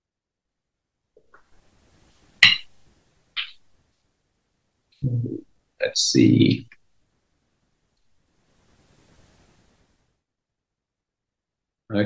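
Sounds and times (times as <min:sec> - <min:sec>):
glass clinking on desk: 0:02.4 - 0:02.7.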